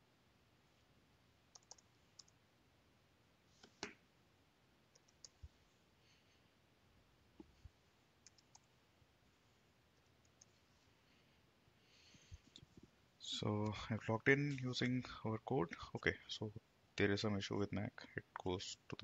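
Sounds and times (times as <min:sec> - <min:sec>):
keyboard and mouse clicks: 0:01.5 - 0:02.4, 0:03.6 - 0:04.0, 0:04.9 - 0:05.5, 0:08.2 - 0:08.7, 0:10.0 - 0:10.6.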